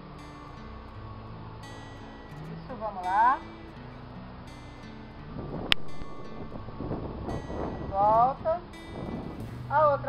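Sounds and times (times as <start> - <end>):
soft background music: 0.0 - 10.0
wind buffeting microphone: 0.0 - 10.0.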